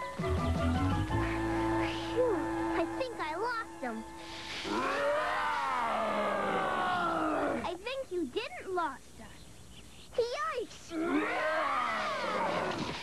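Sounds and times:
cartoon growls and yells: 4.7s - 7.6s, 10.9s - 12.8s.

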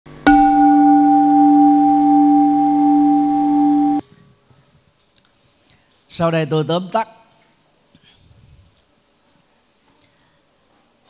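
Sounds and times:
bell ringing low tone: 0.2s - 4.0s.

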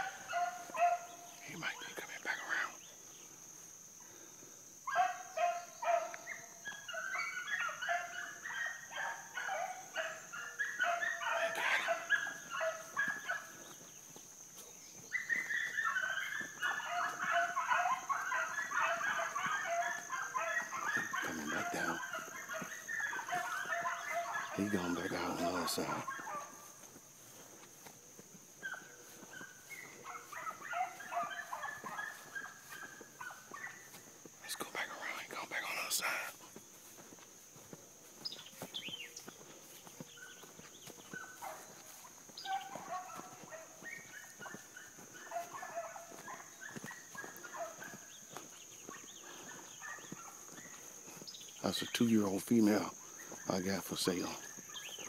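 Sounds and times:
hounds yelping and bawling: 0.0s - 2.7s, 4.8s - 55.0s.

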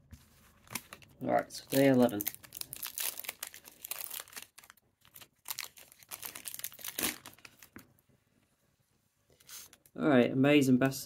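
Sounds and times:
foil card pack crinkling: 0.6s - 7.8s.

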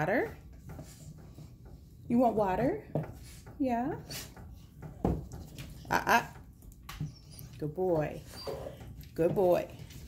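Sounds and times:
dog whining: 7.0s - 9.0s.

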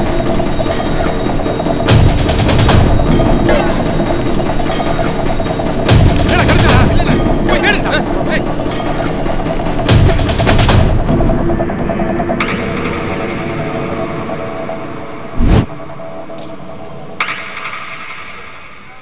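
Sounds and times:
action film music: 0.0s - 19.0s.

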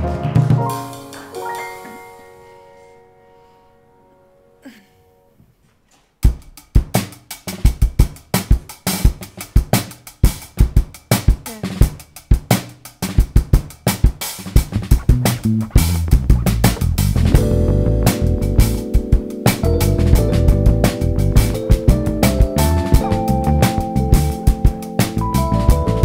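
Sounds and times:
drum kit beat: 0.0s - 2.2s, 6.2s - 26.0s
live band playing: 14.8s - 26.0s.

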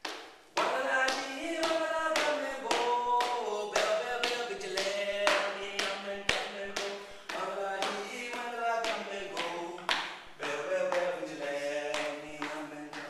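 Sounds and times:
person chanting: 0.6s - 13.0s.

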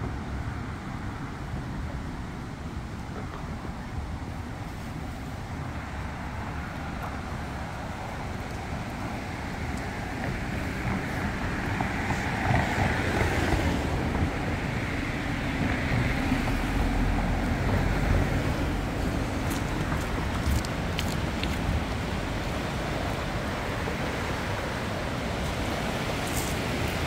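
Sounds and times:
hiss of passing cars: 0.0s - 27.0s.

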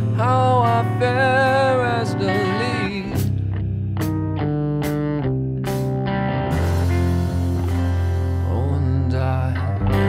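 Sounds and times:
low bass line: 0.0s - 10.0s.

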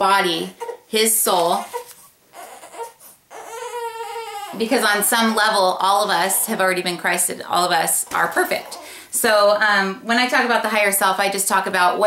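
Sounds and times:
baby crying: 0.5s - 5.6s.

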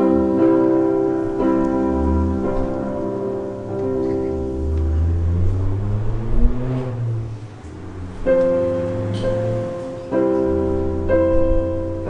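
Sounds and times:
keyboard low bass notes: 0.0s - 12.0s.

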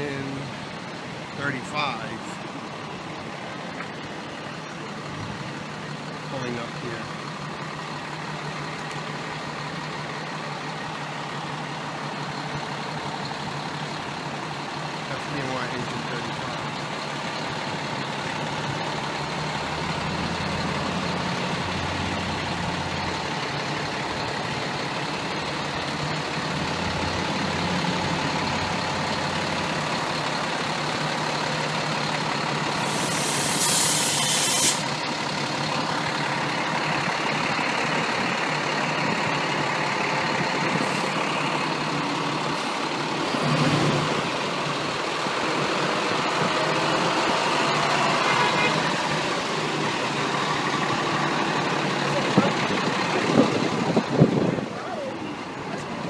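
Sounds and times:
diesel engine idling: 0.0s - 56.0s
air brakes hissing: 32.8s - 35.0s.

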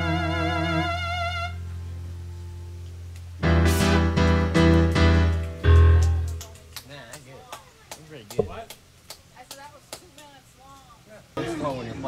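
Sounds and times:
piano chords: 3.4s - 6.6s.

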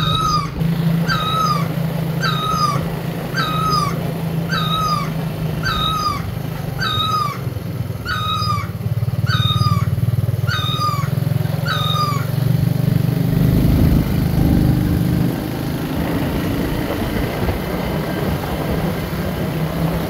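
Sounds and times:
high squeaky call: 0.0s - 12.4s
motorcycle engine running: 0.0s - 20.0s.

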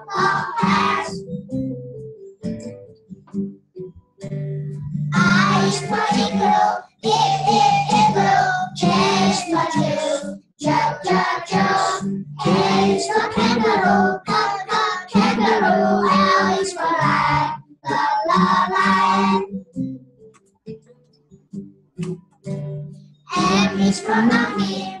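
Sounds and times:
children singing: 0.0s - 1.2s, 5.2s - 19.5s, 23.3s - 25.0s.

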